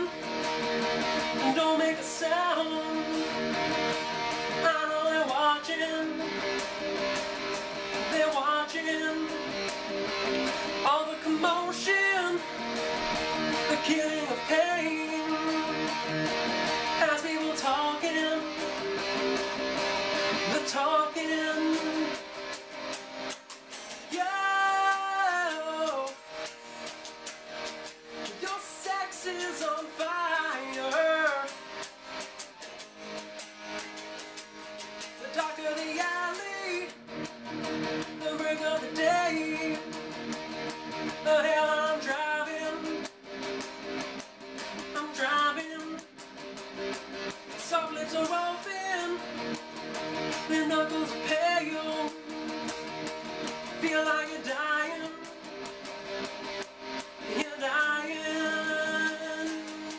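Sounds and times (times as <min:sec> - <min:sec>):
man singing: 0:00.0 - 0:00.3, 0:01.2 - 0:03.8, 0:04.5 - 0:06.6, 0:07.9 - 0:09.9, 0:10.7 - 0:16.1, 0:16.8 - 0:18.9, 0:20.2 - 0:22.4, 0:23.8 - 0:26.5, 0:28.2 - 0:31.6, 0:35.2 - 0:37.2, 0:37.9 - 0:40.0, 0:41.1 - 0:43.1, 0:44.8 - 0:46.2, 0:47.5 - 0:49.5, 0:50.3 - 0:52.6, 0:53.6 - 0:55.5, 0:57.2 - 0:59.9
strummed electric guitar: 0:00.0 - 0:59.9.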